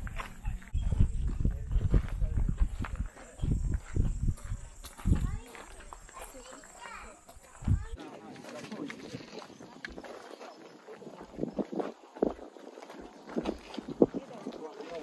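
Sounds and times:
wind gusts on microphone: 0:00.0 - 0:06.2, 0:07.0 - 0:08.0, 0:08.9 - 0:15.0
footsteps crunching on gravel: 0:00.0 - 0:15.0
faint voices of people: 0:00.1 - 0:15.0.

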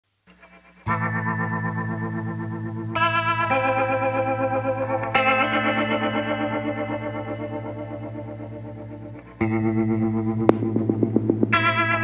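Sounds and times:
background music of sustained chords: 0:00.7 - 0:12.0.

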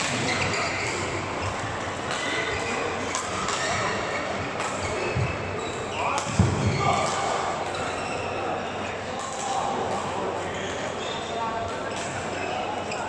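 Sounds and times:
rackets hitting shuttlecocks: 0:00.0 - 0:05.4, 0:06.1 - 0:07.9
indistinct voices in echoing hall: 0:00.0 - 0:13.0.

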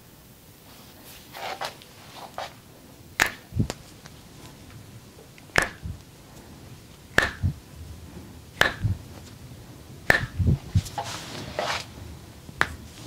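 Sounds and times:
rustling of skin and clothing: 0:00.6 - 0:02.7, 0:10.4 - 0:13.0
sharp snapping clicks: 0:03.2 - 0:04.2, 0:05.4 - 0:06.1, 0:07.1 - 0:07.6, 0:08.6 - 0:09.0, 0:10.1 - 0:10.5.

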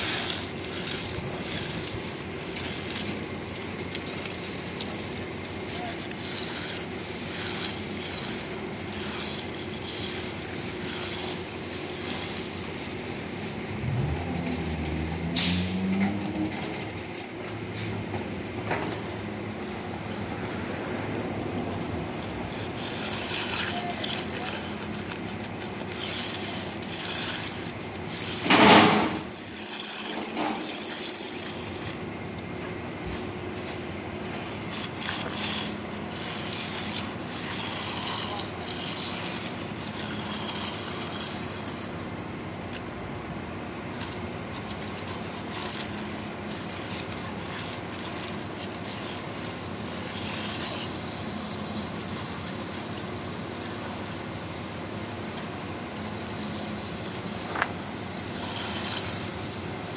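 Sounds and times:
concrete edger scraping wet concrete: 0:00.0 - 0:59.9
steady low hum: 0:00.0 - 0:59.9.

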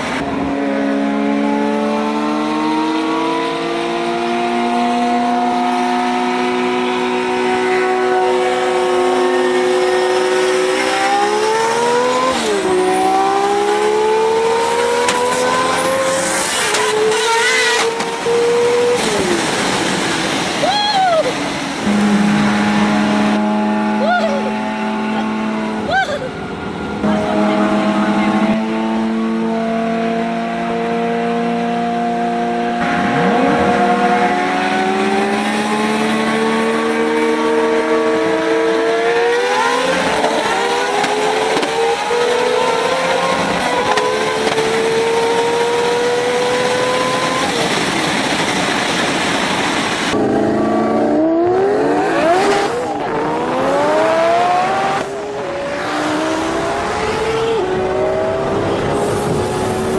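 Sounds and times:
car engines at full throttle: 0:00.0 - 0:59.9.

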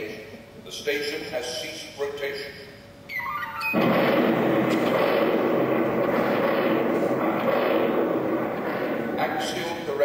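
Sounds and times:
loud steady rumbling: 0:03.8 - 0:10.0.

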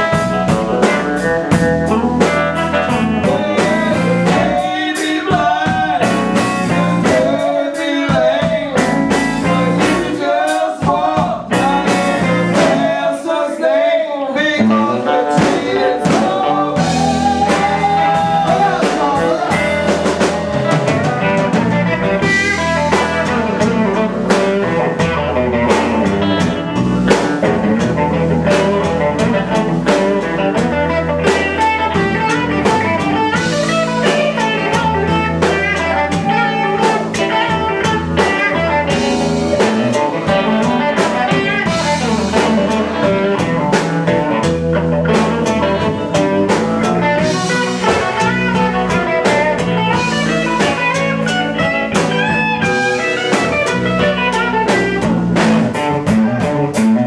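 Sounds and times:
blues band playing: 0:00.0 - 0:57.0
woman singing: 0:09.4 - 0:20.4.

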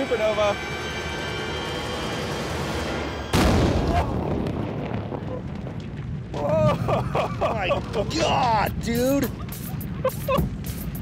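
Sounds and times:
explosion bang rumbling: 0:03.3 - 0:08.0.

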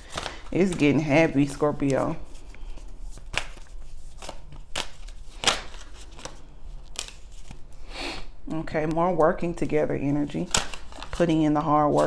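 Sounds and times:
cards snapping and flicking: 0:03.2 - 0:03.6, 0:04.2 - 0:06.4.

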